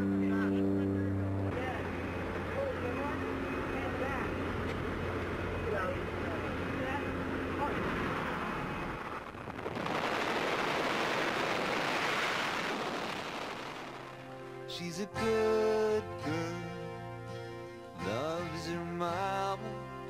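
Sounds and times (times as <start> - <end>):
plane engine droning: 0.0 - 14.7
freefall wind rushing: 6.1 - 14.7.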